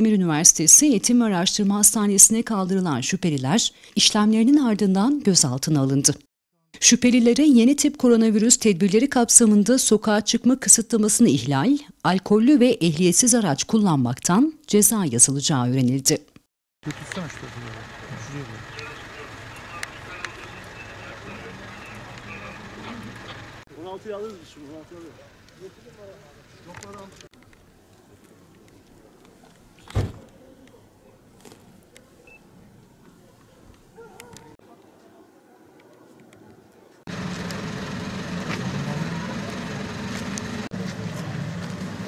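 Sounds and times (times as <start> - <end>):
vehicle engine running: 16.8 - 27.3, 37.1 - 42.0
low outdoor rumble: 16.8 - 29.4, 37.1 - 42.0
distant voices: 16.8 - 42.0.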